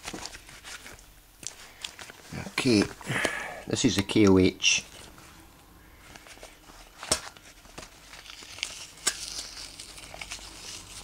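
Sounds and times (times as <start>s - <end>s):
rubber gloves crinkling: 0.0s - 11.0s.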